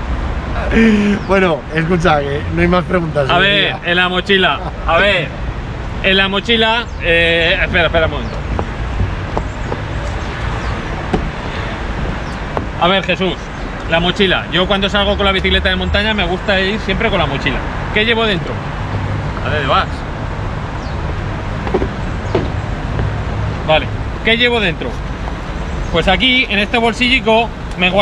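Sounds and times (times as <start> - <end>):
city road traffic rumble: 0.0 - 28.0.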